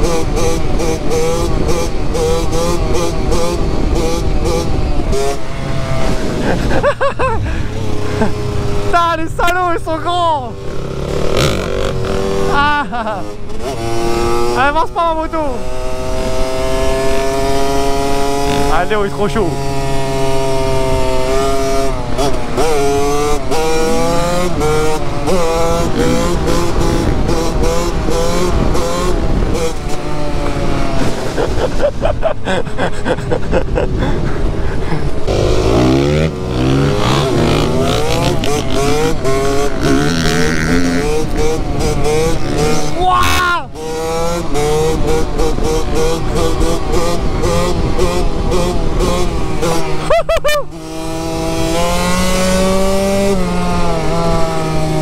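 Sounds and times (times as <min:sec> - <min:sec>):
dirt bike engine accelerating: 0:00.0 - 0:55.0.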